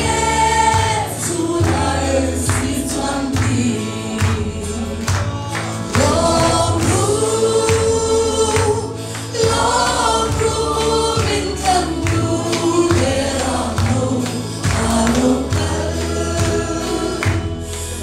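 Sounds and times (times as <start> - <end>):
woman singing into microphone: 0.0 - 5.2, 5.9 - 18.0
amplified backing music with bass: 0.0 - 18.0.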